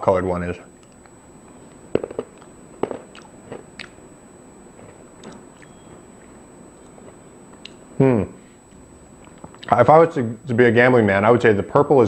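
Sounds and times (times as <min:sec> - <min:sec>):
person chewing crunchy tablet: 0:00.8 - 0:04.0, 0:04.8 - 0:07.8, 0:08.7 - 0:09.8.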